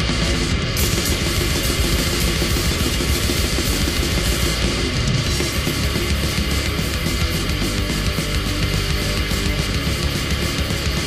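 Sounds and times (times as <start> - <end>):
distorted extreme metal band: 0.0 - 11.0
fast pounding drums: 0.0 - 11.0.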